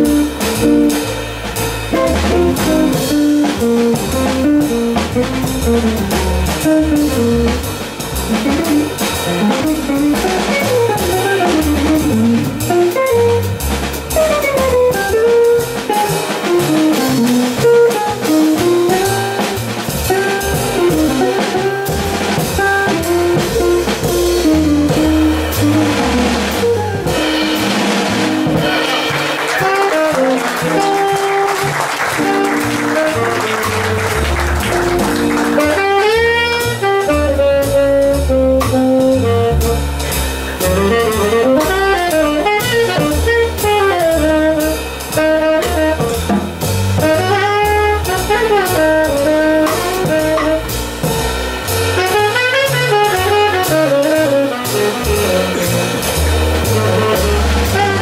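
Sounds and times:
drum kit: 0.0s - 58.0s
upright bass: 0.0s - 58.0s
tenor saxophone: 28.6s - 46.3s, 47.0s - 50.8s, 51.9s - 58.0s.

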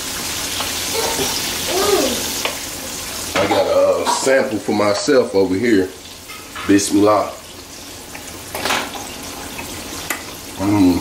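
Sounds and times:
chicken frying in hot oil: 0.0s - 11.0s.

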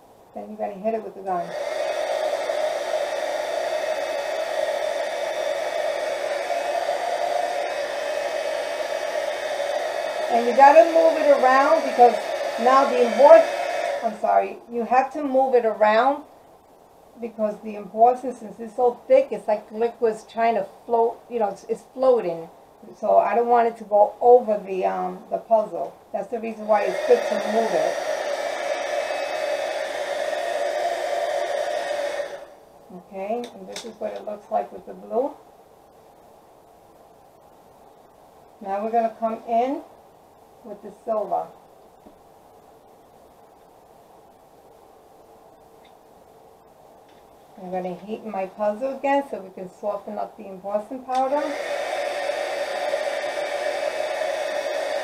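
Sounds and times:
heat gun blowing: 1.3s - 14.5s, 26.3s - 32.6s, 51.1s - 55.0s.

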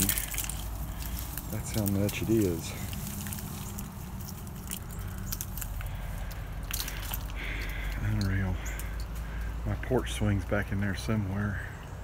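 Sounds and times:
icy twigs clicking: 0.0s - 9.6s.

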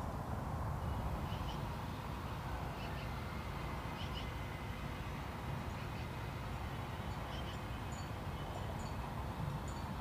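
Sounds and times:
low outdoor rumble: 0.0s - 10.0s
faint high tinkling tones: 7.0s - 10.0s.

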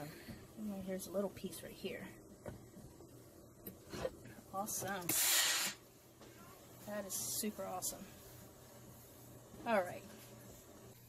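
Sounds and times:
steam iron hissing: 5.0s - 5.9s.

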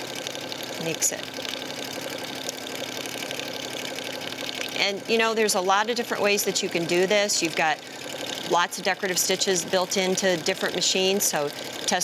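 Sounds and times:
sewing machine running: 0.0s - 12.0s.

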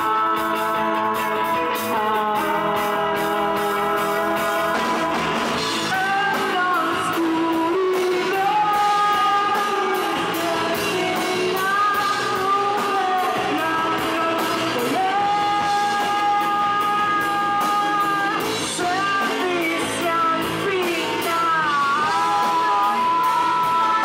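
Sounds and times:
live indie pop band: 0.0s - 24.0s
person singing long notes: 0.0s - 24.0s.

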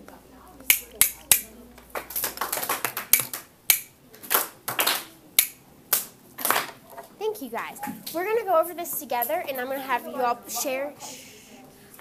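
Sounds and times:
sharp snaps: 0.6s - 1.5s, 2.1s - 6.2s.

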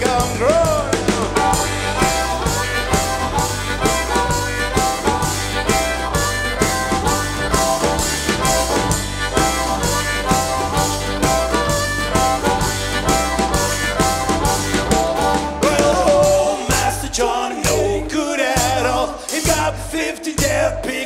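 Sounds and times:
acoustic guitar: 0.0s - 17.0s
harmonica playing: 0.0s - 18.0s
upright double bass: 0.0s - 20.8s.

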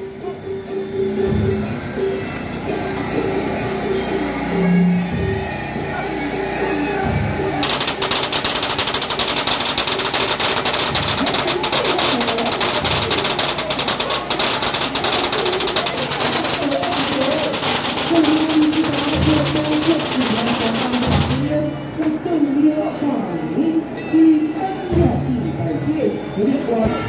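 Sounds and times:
wind melody over drums: 0.0s - 22.3s
firecrackers crackling: 6.2s - 21.8s.

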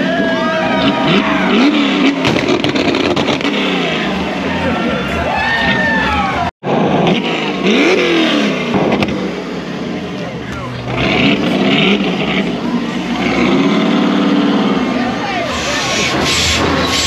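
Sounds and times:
car engine revving: 0.0s - 17.0s.

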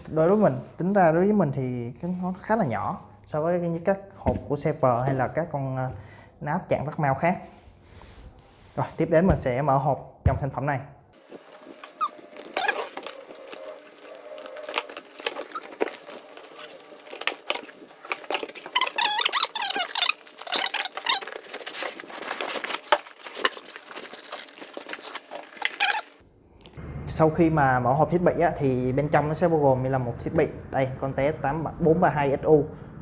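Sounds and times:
cardboard flaps scraping and rustling: 11.2s - 26.2s
packing material squeaking: 11.2s - 26.2s.

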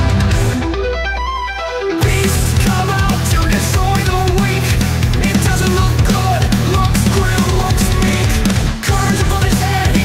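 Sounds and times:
guitar single stepping notes: 0.0s - 3.1s
heavy metal music: 0.0s - 10.0s.

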